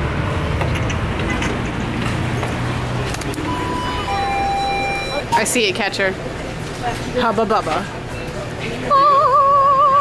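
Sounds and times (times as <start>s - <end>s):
electronic door chime: 3.5s - 5.4s.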